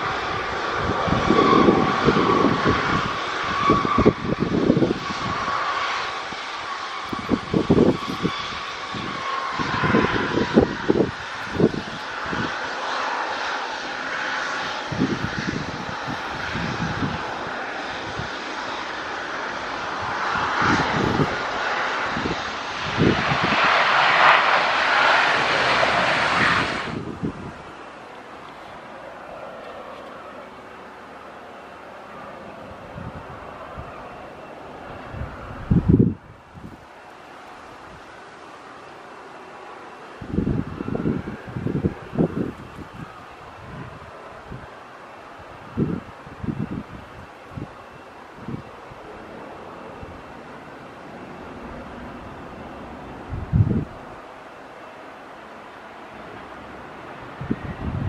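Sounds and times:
wind buffeting microphone: 0.0s - 30.3s, 32.2s - 36.9s, 40.2s - 54.3s, 56.2s - 58.0s
turboprop airliner drone: 0.0s - 58.0s.

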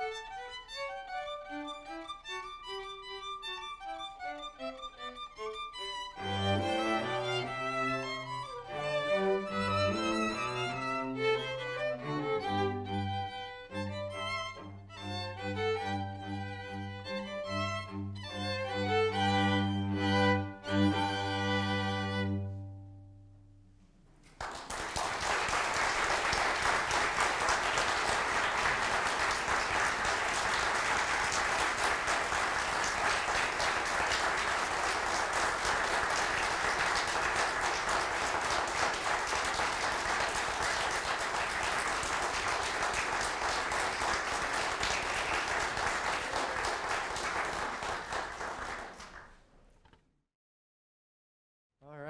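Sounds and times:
audience applauding: 24.3s - 49.4s.

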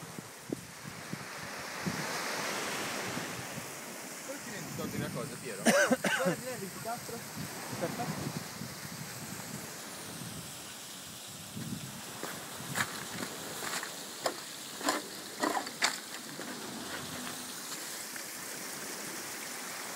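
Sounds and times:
footsteps crunching on stones: 11.6s - 18.4s
steady rushing background noise: 12.2s - 18.5s.

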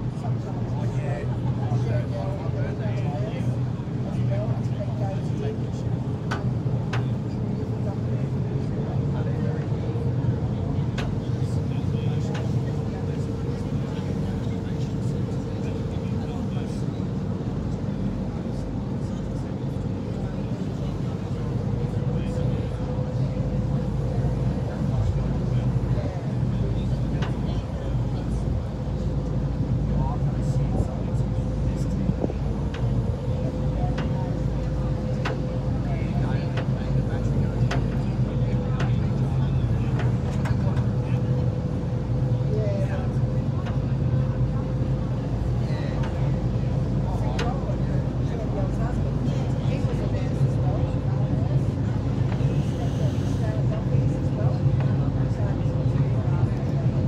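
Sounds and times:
boat engine droning: 0.0s - 57.0s.

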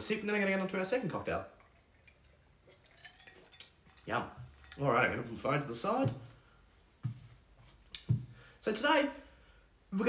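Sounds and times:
ice cubes clinking in a glass: 2.2s - 4.8s.

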